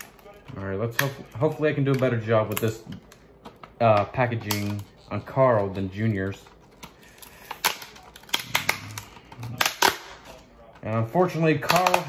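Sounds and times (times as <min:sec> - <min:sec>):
plastic packaging crackling: 0:00.0 - 0:12.0.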